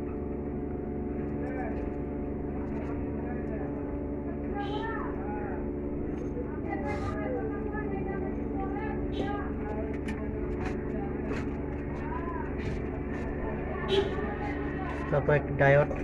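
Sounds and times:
low mechanical hum: 0.0 - 16.0
indistinct background voices: 2.7 - 16.0.

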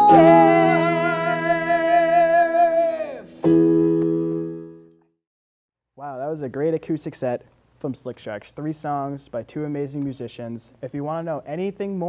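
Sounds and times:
electric guitar chord: 0.0 - 2.2, 3.4 - 4.9
keyboard chords: 0.0 - 5.1.

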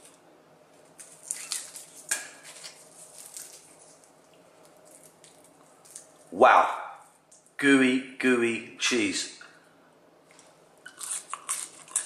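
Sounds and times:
pastry crackling and crunching: 0.0 - 6.4, 10.3 - 12.0.

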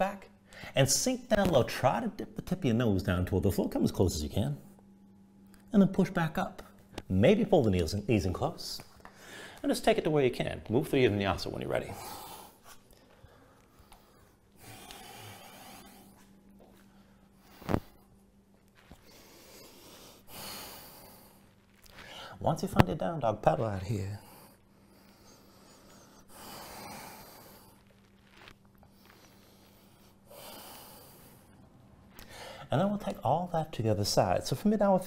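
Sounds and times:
faint steady hum: 0.0 - 35.0
man breathing: 9.0 - 9.6, 11.8 - 18.2, 18.9 - 22.4, 24.1 - 32.7.

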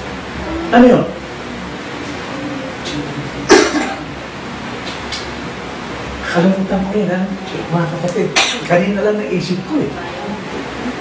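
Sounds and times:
man coughing: 3.5 - 4.1, 8.4 - 8.7.

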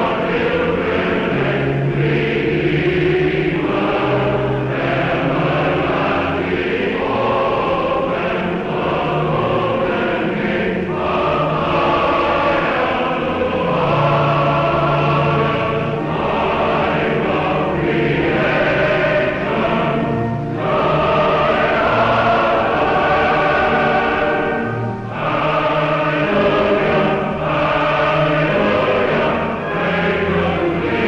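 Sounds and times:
choir singing: 0.0 - 31.0.

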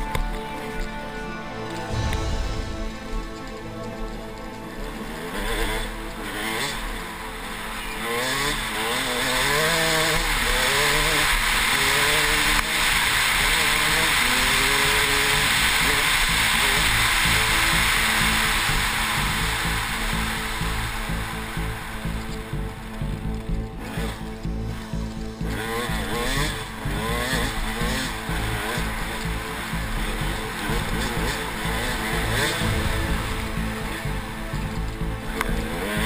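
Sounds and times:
dirt bike engine revving: 2.8 - 36.0.

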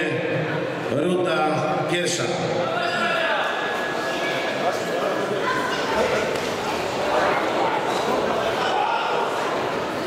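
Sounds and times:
spectators shouting and cheering: 2.6 - 10.0.

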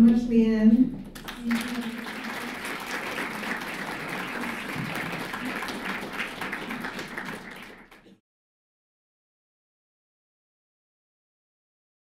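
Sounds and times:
audience applauding: 1.1 - 8.2.

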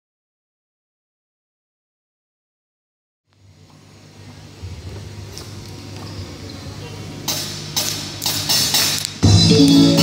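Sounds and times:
amplifier hum: 3.3 - 10.0
faint voices: 4.0 - 7.6
drum kit percussion strikes: 7.2 - 10.0.

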